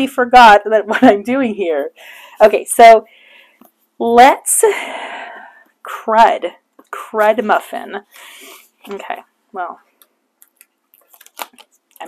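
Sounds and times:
paper sticker sheet crinkling: 10.4s - 12.0s.

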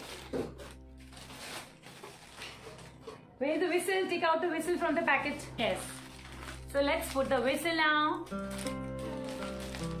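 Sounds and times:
plastic wrapping crinkling: 0.0s - 3.2s, 4.7s - 10.0s.

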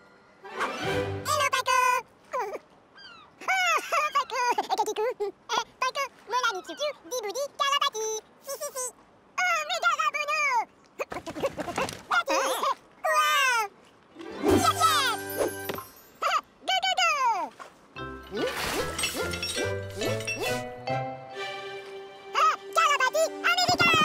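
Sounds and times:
high-pitched cartoon voices chattering: 3.4s - 13.7s.

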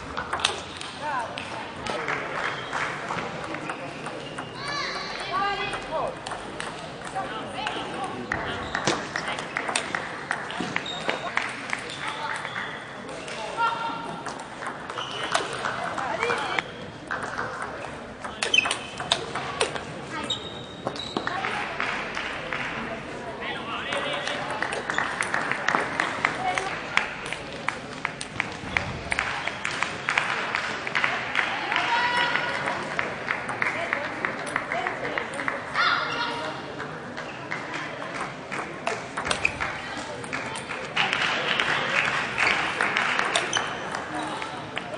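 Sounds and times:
chatter of voices: 0.0s - 44.9s
shoes squeaking on court floor: 10.6s - 12.8s, 14.9s - 17.0s, 18.3s - 21.4s, 39.2s - 40.3s, 43.3s - 44.7s.

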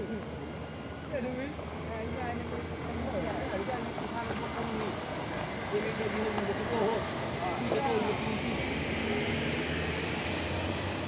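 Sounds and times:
minibus engine running: 0.0s - 11.0s.

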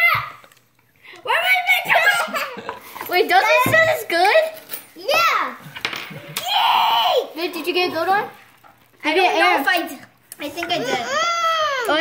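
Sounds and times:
children calling out excitedly: 6.4s - 7.8s, 10.4s - 12.0s
child crying out roughly: 10.7s - 12.0s.

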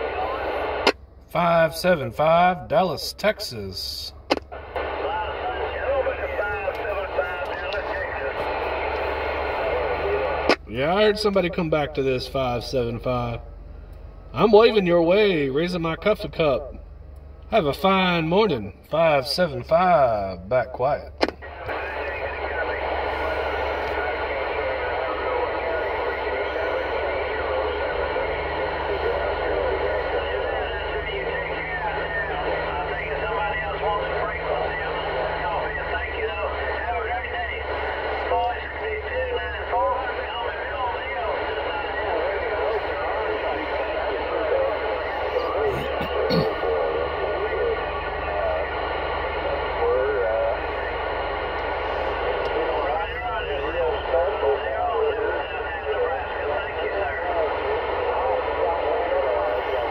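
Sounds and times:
radio static: 0.0s - 13.4s, 14.3s - 16.8s, 17.5s - 59.9s
garbled radio voices: 0.0s - 13.5s, 14.3s - 16.8s, 17.5s - 59.9s.

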